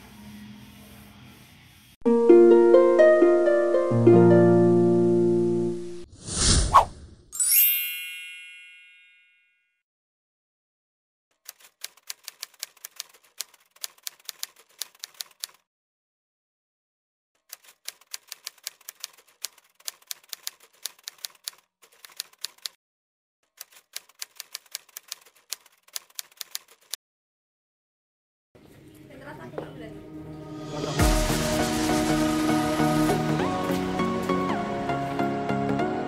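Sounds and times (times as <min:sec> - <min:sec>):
bell-like logo chime: 0:07.4 - 0:09.7.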